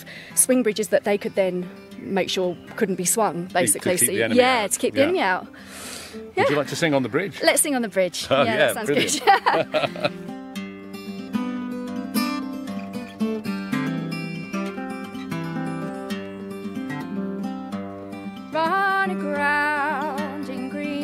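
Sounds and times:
plucked string instrument: 0:00.2 - 0:05.6, 0:06.2 - 0:21.0.

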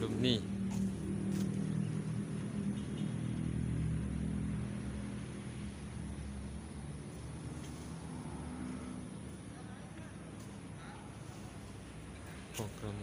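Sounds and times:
engine running: 0:00.0 - 0:10.8.

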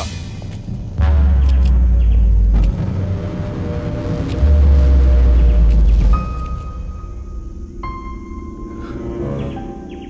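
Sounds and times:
deep bass rumble: 0:00.0 - 0:07.8.

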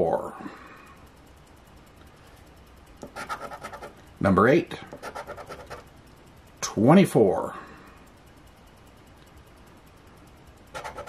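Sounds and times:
scratching lottery ticket coating: 0:03.0 - 0:04.0, 0:04.9 - 0:05.9, 0:10.7 - 0:11.0.

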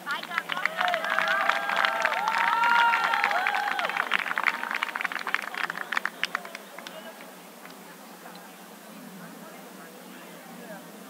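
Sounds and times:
audience clapping: 0:00.0 - 0:07.8.

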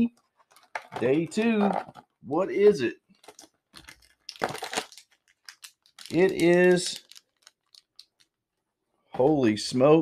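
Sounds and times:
packaging tearing and crinkling: 0:03.2 - 0:08.4.

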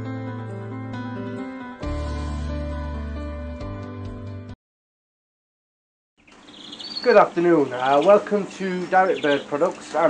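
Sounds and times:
caged birds chirping: 0:06.2 - 0:10.0
high twittering bird call: 0:06.2 - 0:10.0.

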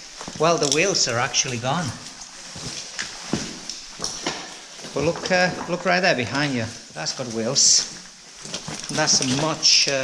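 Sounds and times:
boots stepping on loose rocks: 0:00.0 - 0:10.0.

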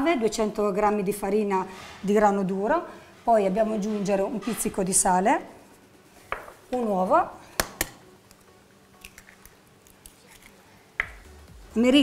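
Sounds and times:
eggshell crackling: 0:08.2 - 0:11.3.

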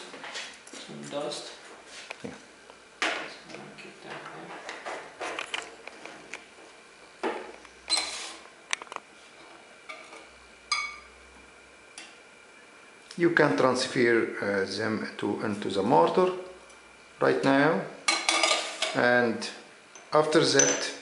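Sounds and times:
metal forceps clinking on glass: 0:20.5 - 0:20.9.

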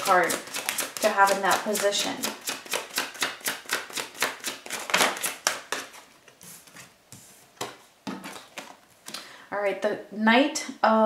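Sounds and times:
cards being shuffled: 0:00.0 - 0:08.8.

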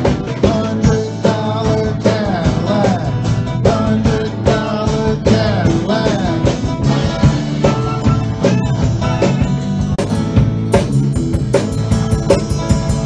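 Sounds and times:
man singing into microphone: 0:00.0 - 0:08.4
acoustic guitar strumming: 0:00.0 - 0:13.0.

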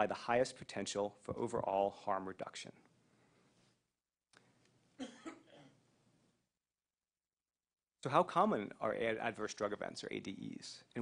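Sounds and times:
person coughing: 0:05.0 - 0:05.8.

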